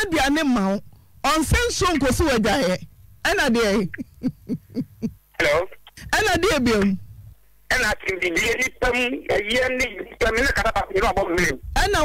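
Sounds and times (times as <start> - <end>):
person speaking: 0.0 - 12.0
person making hooting sounds: 3.7 - 5.2.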